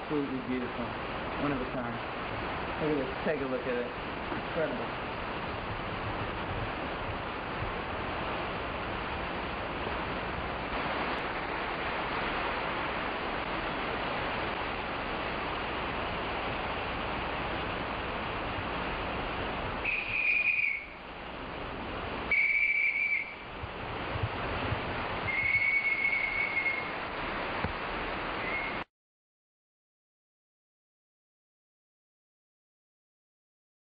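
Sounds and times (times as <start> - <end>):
heavy rain: 0.0 - 28.9
high whistled notes: 19.8 - 21.0, 22.3 - 23.4, 25.3 - 27.0, 28.4 - 28.8.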